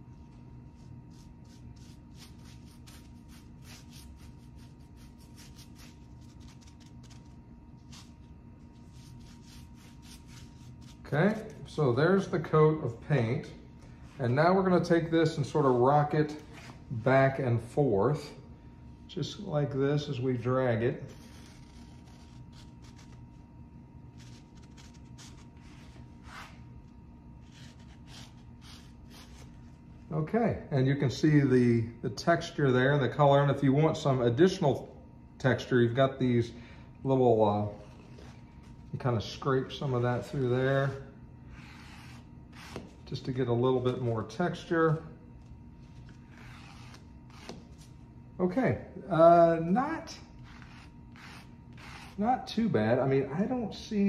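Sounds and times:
scratchy rustles of tool on wood: 0:21.1 - 0:23.5, 0:41.5 - 0:43.1, 0:45.4 - 0:48.0, 0:50.3 - 0:52.2.

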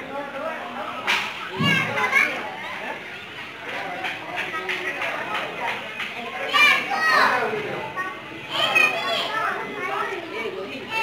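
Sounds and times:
crowd chatter with children: 0:00.0 - 0:11.0
sharp crack: 0:01.0 - 0:01.5.

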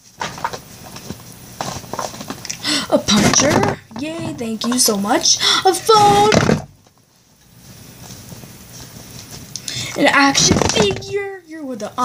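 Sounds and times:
wrapping paper crinkling: 0:00.0 - 0:09.5.

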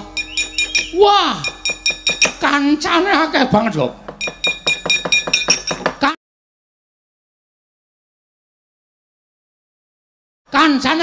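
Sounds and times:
metal plates struck clattering: 0:00.0 - 0:06.0.

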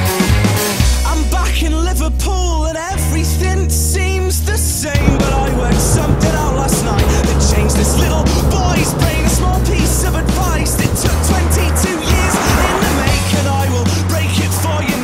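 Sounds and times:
deep bass line: 0:03.2 - 0:15.0
drum beat: 0:05.0 - 0:12.3.

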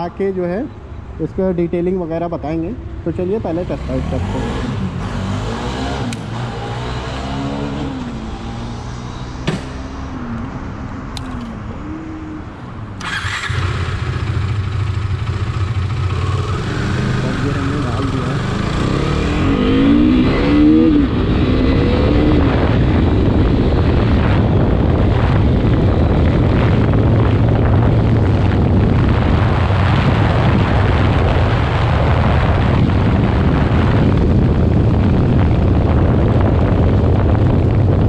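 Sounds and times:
wind rush: 0:02.4 - 0:38.0
motorcycle engine accelerating: 0:03.5 - 0:12.4, 0:13.0 - 0:38.0.

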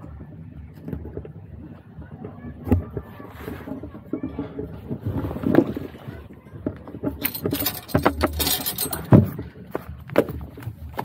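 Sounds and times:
scraping and rustling: 0:00.9 - 0:09.6.

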